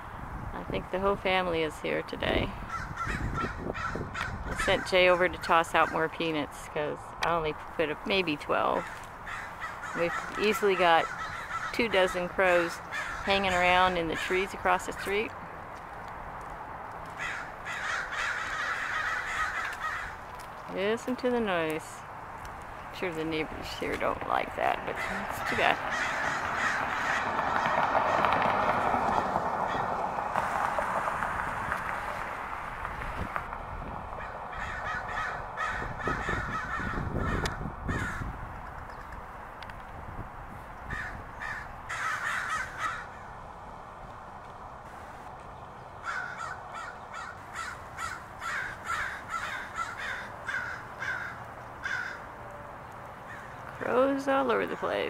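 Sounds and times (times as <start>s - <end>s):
crows cawing: 2.6s - 6.1s, 8.8s - 14.5s, 17.0s - 20.5s, 25.0s - 30.3s, 34.2s - 38.4s, 40.9s - 43.5s, 46.0s - 52.4s, 53.2s - 53.6s
rushing noise: 25.8s - 34.5s.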